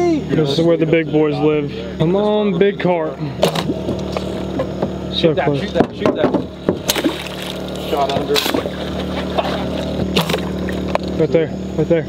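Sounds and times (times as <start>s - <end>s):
generator humming: 0.0s - 12.0s
voice: 7.8s - 8.7s, 11.2s - 12.0s.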